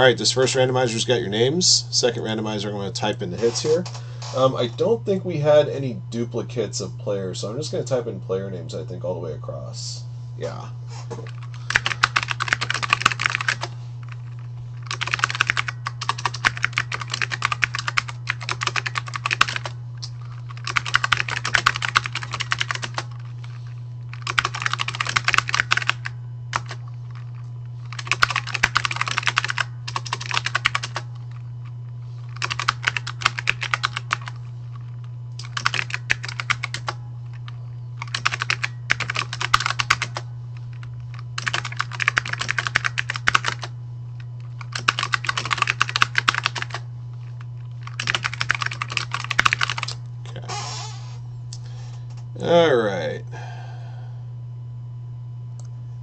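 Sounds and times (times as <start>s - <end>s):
steady low hum: 0.0s - 56.0s
computer keyboard typing: 11.2s - 31.4s, 32.2s - 43.7s, 44.4s - 50.0s.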